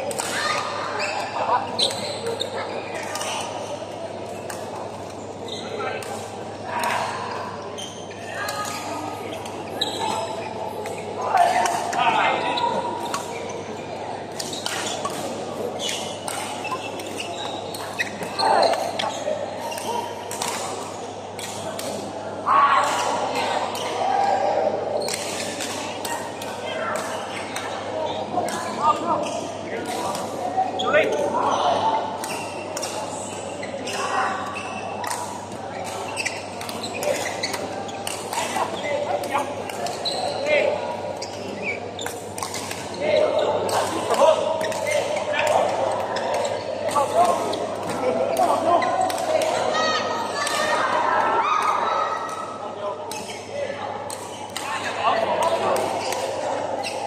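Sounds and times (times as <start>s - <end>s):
voices talking: 0.0s - 57.0s.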